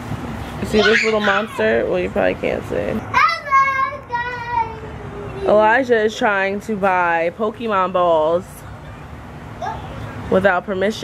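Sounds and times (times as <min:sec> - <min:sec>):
toddler sing-song voice: 0:03.2 - 0:05.5.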